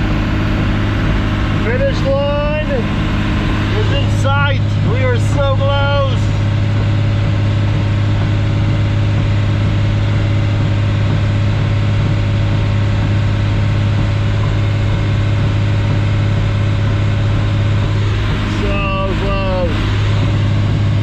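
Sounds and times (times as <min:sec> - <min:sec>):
diesel engine droning under load: 0:00.0 - 0:21.0.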